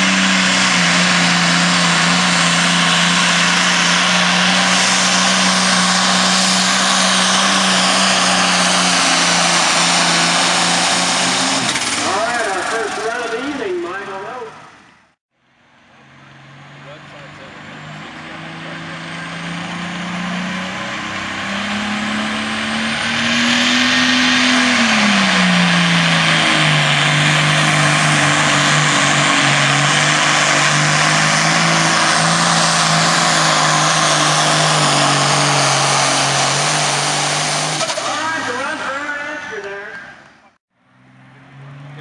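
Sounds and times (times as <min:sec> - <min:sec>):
diesel engine at full throttle: 0:00.0 - 0:42.0
high turbo whine: 0:00.0 - 0:42.0.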